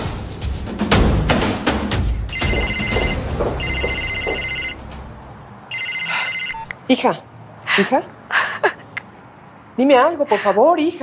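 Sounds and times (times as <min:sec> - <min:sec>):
dramatic music with percussive hits: 0:00.0 - 0:05.2
mobile phone ringing: 0:02.3 - 0:04.8, 0:05.7 - 0:06.7.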